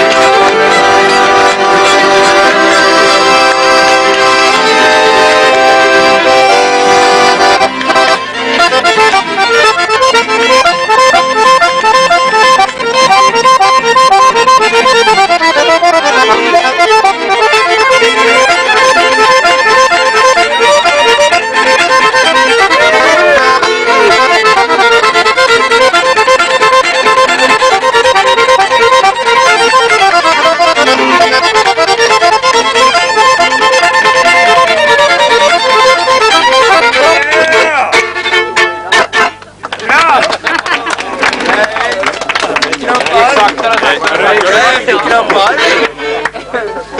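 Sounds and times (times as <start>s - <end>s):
accordion: 0.0s - 46.9s
fiddle: 0.0s - 46.9s.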